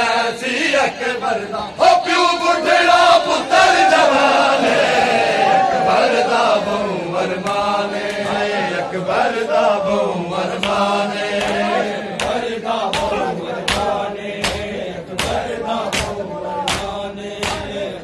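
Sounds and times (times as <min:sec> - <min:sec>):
men chanting a lament: 0:00.0 - 0:18.0.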